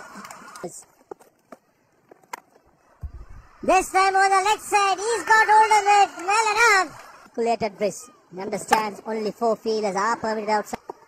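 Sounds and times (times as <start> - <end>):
broadcast background noise: 0.0 - 11.0.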